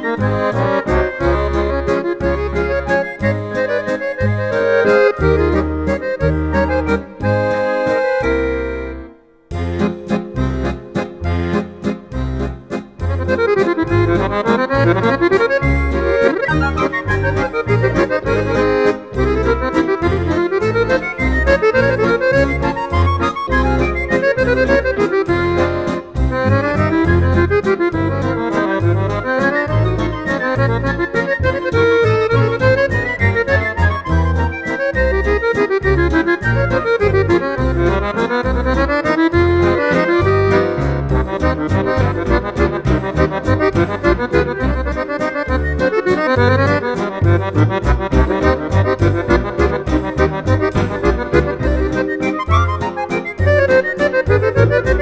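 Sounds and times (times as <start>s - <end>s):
button accordion playing waltz: 0.0s - 55.0s
synthesizer backing: 0.0s - 55.0s.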